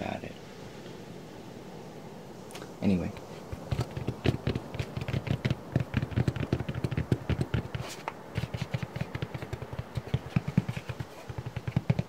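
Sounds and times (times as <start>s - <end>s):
fingertip tapping on hard surface: 3.6s - 12.0s.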